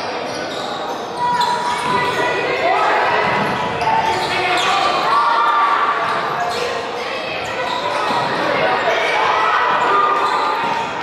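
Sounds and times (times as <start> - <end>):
shoe squeaks: 0.0 - 2.6, 3.2 - 8.6, 9.6 - 11.0
echoing voices: 0.0 - 11.0.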